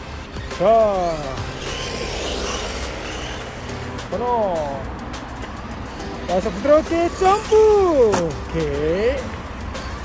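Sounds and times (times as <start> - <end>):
tyre noise on concrete: 0.5 - 8.9
rc car motor whine: 1.0 - 4.1, 6.4 - 8.0.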